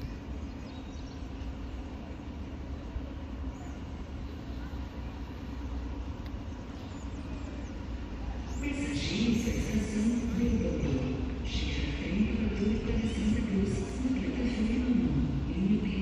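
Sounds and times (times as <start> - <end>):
rail vehicle engine rumbling: 0.0 - 16.0.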